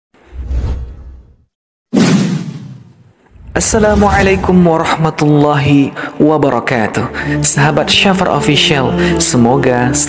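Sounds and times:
deep whoosh: 0:02.3 - 0:04.8.

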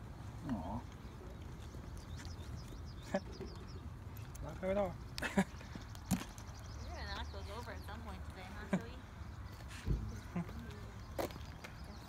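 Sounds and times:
faint voices: 0:06.7 - 0:12.0.

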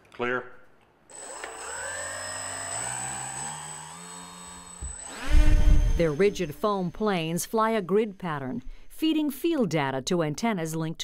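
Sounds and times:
electric motors whining: 0:01.1 - 0:08.6.

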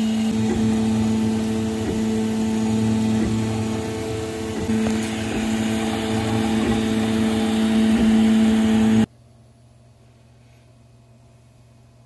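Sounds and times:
printer motor whine: 0:00.0 - 0:09.1.

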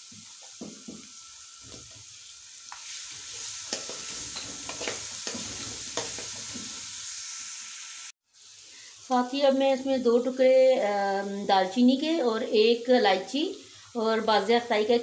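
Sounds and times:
masala sizzling in hot oil: 0:00.0 - 0:15.0
metal spoon scraping pan: 0:02.8 - 0:06.8.

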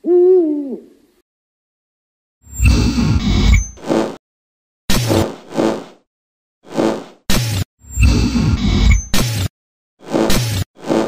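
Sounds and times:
owl hoot: 0:00.0 - 0:01.0.

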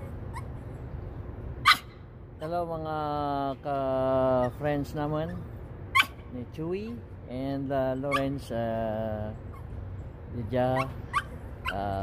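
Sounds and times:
dog whining: 0:00.0 - 0:00.7, 0:04.3 - 0:06.2, 0:08.0 - 0:08.4, 0:09.4 - 0:09.8, 0:10.6 - 0:12.0
man saying uh: 0:11.7 - 0:12.0.

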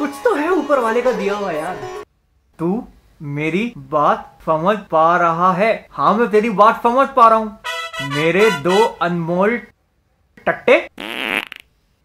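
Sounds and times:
buzzing fart-like noise: 0:11.0 - 0:11.7.

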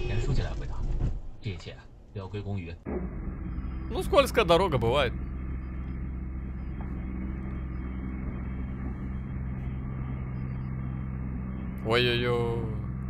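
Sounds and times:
truck engine hum and rumble: 0:00.0 - 0:13.0.

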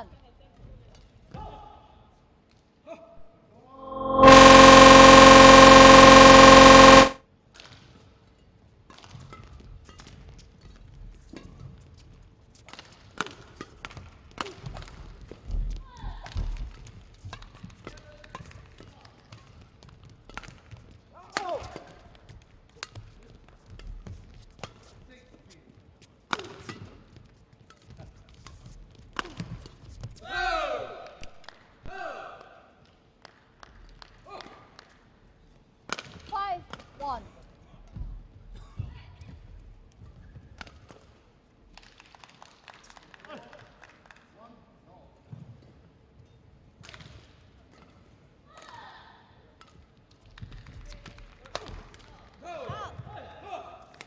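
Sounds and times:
loud steady buzzing tone: 0:03.8 - 0:07.2.

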